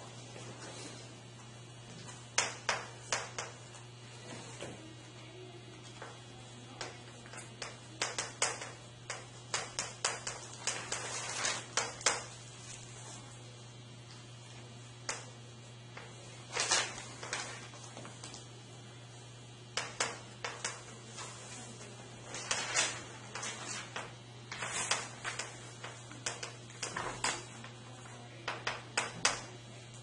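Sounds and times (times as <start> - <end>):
low room hum: 0.0 - 30.0
chalk tapping and scratching on blackboard: 6.8 - 12.3, 22.4 - 27.6.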